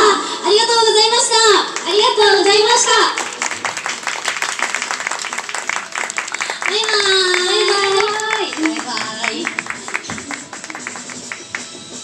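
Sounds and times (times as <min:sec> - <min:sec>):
background music: 0:00.9 - 0:12.0
audience clapping: 0:01.6 - 0:12.0.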